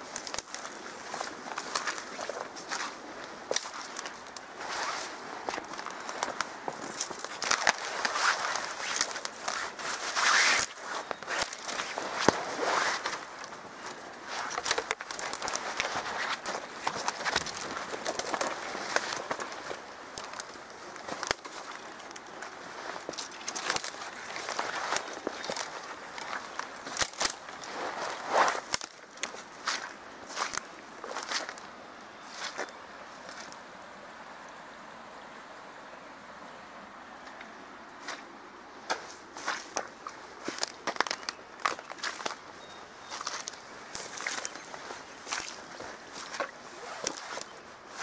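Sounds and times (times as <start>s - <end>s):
footsteps through dry grass: 0.0s - 33.6s, 38.0s - 48.0s
twigs crackling and snapping: 0.0s - 33.6s, 38.9s - 48.0s.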